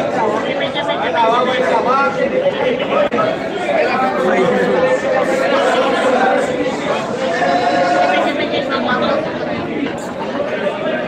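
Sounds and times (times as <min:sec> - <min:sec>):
crowd of men talking: 0:00.0 - 0:11.0.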